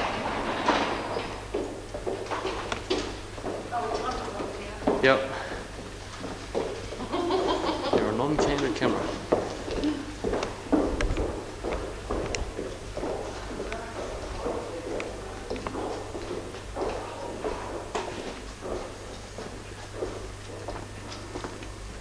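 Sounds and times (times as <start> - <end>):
footsteps on wooden floor: 0.0 - 22.0
steady low hum: 0.0 - 22.0.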